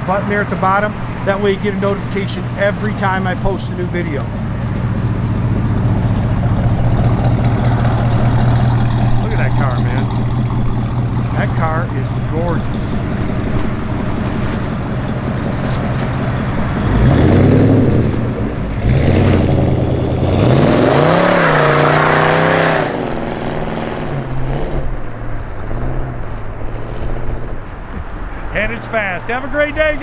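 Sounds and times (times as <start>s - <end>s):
car accelerating away: 0.0s - 27.7s
car engine idling and revving: 0.0s - 30.0s.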